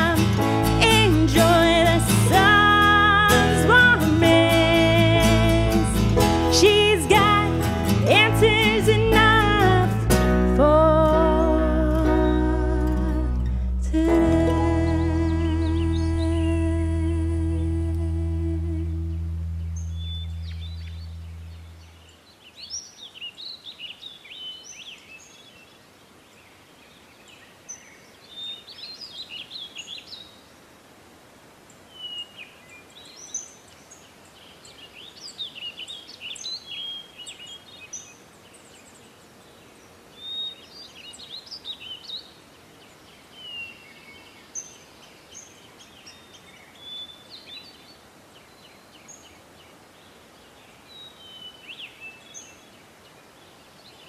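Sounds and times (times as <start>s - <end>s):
held song chord: 0.0s - 22.1s
faint outdoor background noise: 0.0s - 54.0s
birds chirping and trilling: 19.3s - 23.6s.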